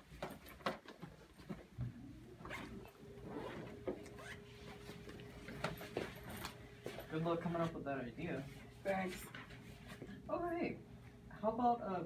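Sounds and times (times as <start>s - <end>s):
clothing and bags rustling: 0.0s - 10.3s
faint steady hum: 0.0s - 12.0s.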